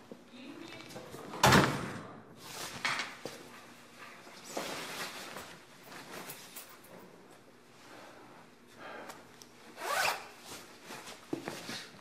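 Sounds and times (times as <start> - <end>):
trouser zipper pulled: 9.8 - 10.3.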